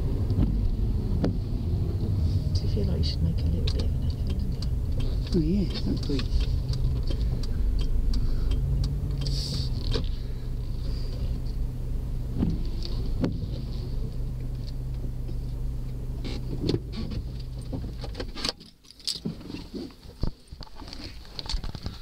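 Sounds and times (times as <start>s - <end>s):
car engine and road drone: 0.0s - 22.0s
light clicks and rattles: 2.1s - 10.2s.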